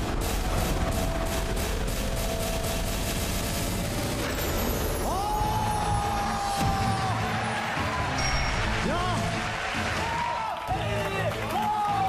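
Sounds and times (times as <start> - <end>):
rapid drumroll beats: 0.0 - 7.5.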